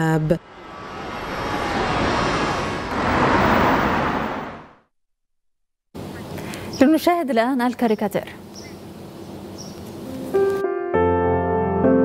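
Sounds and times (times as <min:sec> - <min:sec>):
cars passing by: 0:00.0 - 0:04.9.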